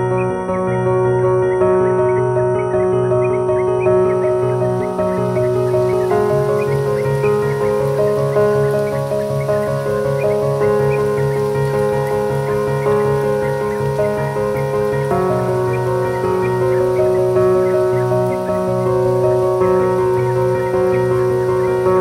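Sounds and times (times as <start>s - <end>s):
ambient instrumental music: 0.0s - 22.0s
held chords: 0.0s - 22.0s.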